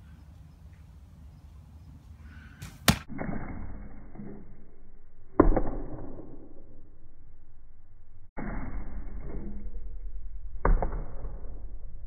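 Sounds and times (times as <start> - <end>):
arrow striking target: 2.6 - 4.4, 5.3 - 6.6.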